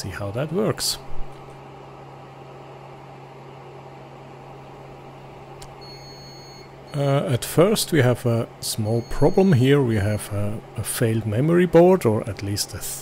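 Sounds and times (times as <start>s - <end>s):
server cooling fans humming: 0.0s - 13.0s.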